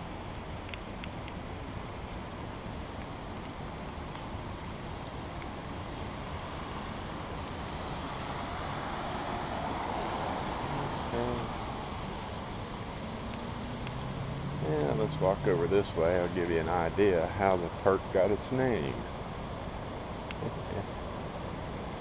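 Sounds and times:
traffic on wet roads: 0:05.2 - 0:19.4
rain hissing: 0:06.3 - 0:16.8.

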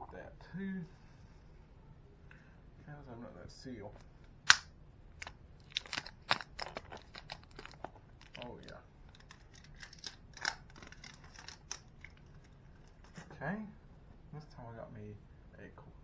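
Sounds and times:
plastic bottle crackling: 0:05.2 - 0:13.2.

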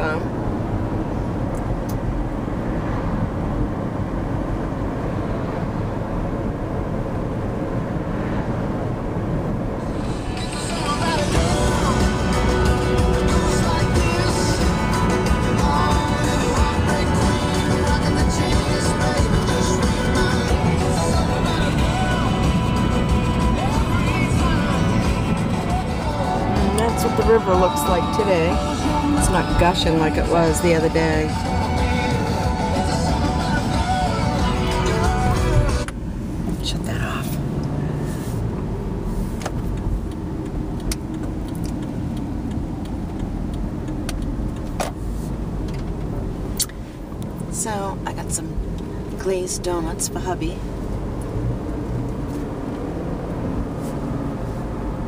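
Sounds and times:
car cabin road and engine noise: 0:00.0 - 0:55.0
music with a voice: 0:09.8 - 0:35.9.

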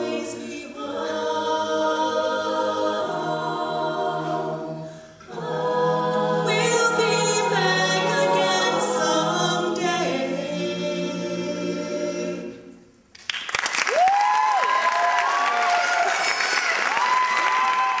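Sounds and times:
a cappella group singing: 0:00.0 - 0:12.9
audience applauding: 0:13.2 - 0:18.0
high cheers: 0:13.8 - 0:18.0.

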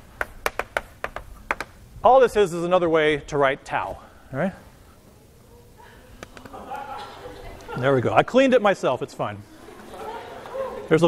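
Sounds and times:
chalk tapping on blackboard: 0:00.2 - 0:01.7.

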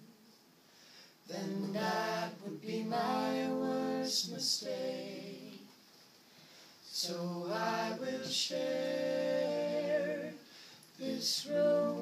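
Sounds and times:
woman singing: 0:11.1 - 0:12.0.

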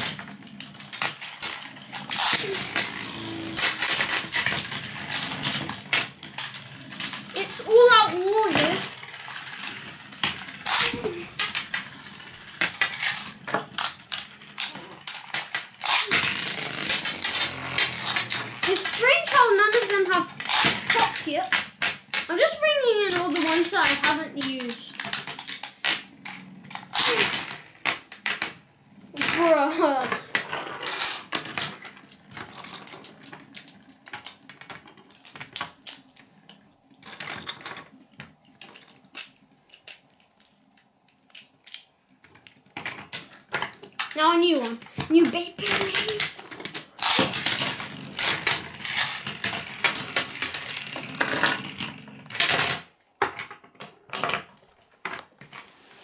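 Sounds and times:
spinning tops clashing and clicking: 0:00.0 - 0:28.6, 0:42.8 - 0:52.8.

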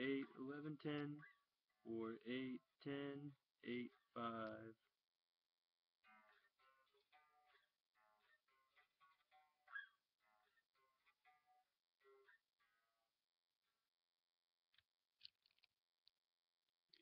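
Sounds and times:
electric guitar riff: 0:06.0 - 0:12.9.

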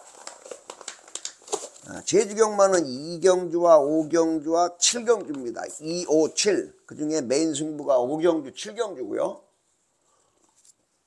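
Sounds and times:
small rustles: 0:00.0 - 0:02.2
man speaking: 0:01.8 - 0:09.5.

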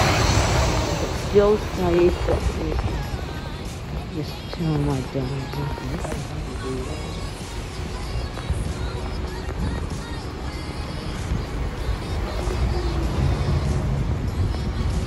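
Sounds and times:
bus driving past: 0:00.0 - 0:15.0
low rumble of street traffic: 0:00.0 - 0:15.0
music playing: 0:00.0 - 0:15.0.

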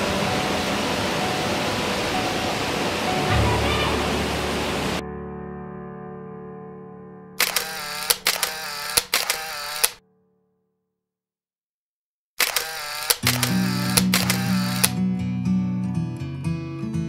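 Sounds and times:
acoustic guitar music: 0:00.0 - 0:05.8, 0:13.2 - 0:17.0
camera shutter clicks: 0:07.4 - 0:10.0, 0:12.4 - 0:15.0.

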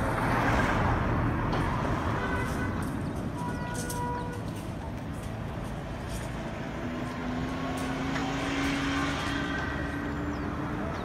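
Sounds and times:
low road rumble: 0:00.0 - 0:11.0
truck engine passing: 0:00.0 - 0:11.0.

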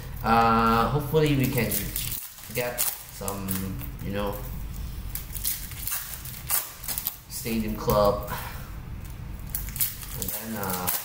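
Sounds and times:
foil wrapper crinkling: 0:00.0 - 0:08.0, 0:09.0 - 0:11.0.

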